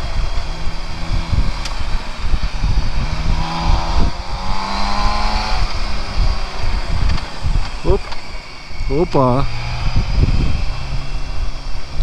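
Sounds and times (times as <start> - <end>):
motorcycle engine cruising: 0.0 - 12.0
wind rush on microphone: 0.0 - 12.0.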